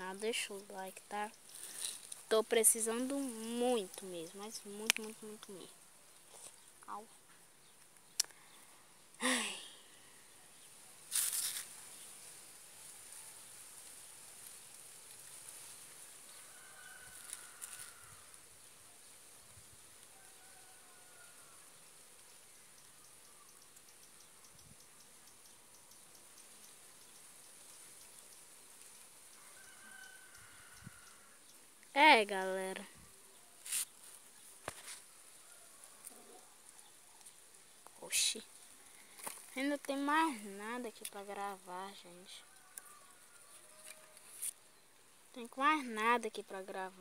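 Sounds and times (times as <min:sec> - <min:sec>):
steady high hiss: 0:00.0 - 0:47.0
faint drawn-out bird calls: 0:16.2 - 0:31.8.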